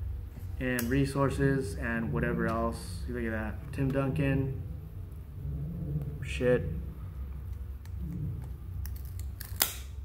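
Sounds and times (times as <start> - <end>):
low steady hum: 0.0 - 10.0
sharp card snap: 9.3 - 10.0.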